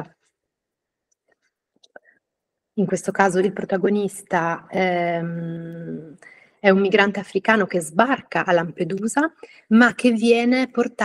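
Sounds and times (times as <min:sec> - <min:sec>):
woman's voice: 0:02.8 - 0:11.0.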